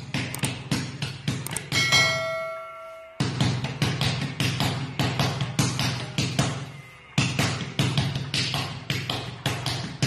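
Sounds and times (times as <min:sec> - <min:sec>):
background music with steady beat: 0:00.0 - 0:10.0
bright bell ding: 0:01.7 - 0:03.3.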